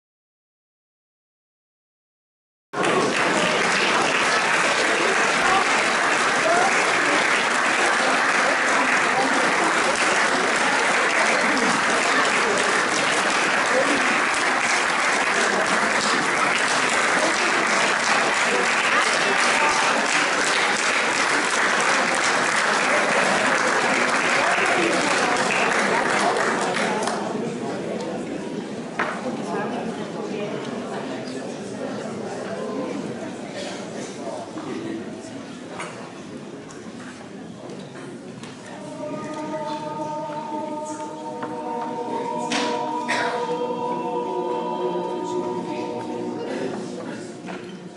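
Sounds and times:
audience applauding: 2.8 - 27.3.

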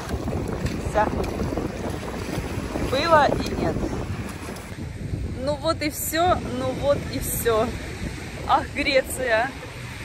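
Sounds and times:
small wave washing over sand: 0.0 - 4.7
wind buffeting microphone: 0.0 - 10.0.

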